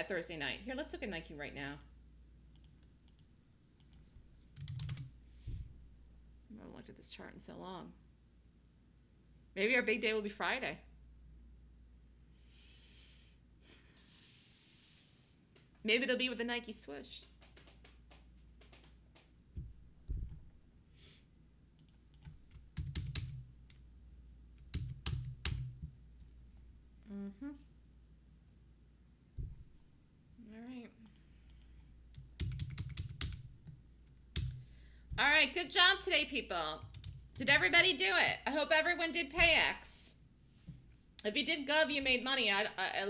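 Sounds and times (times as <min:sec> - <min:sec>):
computer keyboard clicks: 0:04.6 - 0:05.1, 0:21.8 - 0:23.4, 0:31.1 - 0:33.5
dull low thumps: 0:19.5 - 0:20.6, 0:29.4 - 0:29.8.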